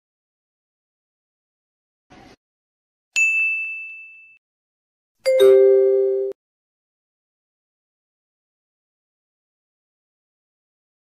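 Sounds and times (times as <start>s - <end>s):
bright high ding: 3.2s - 4.4s, 5.3s - 6.4s.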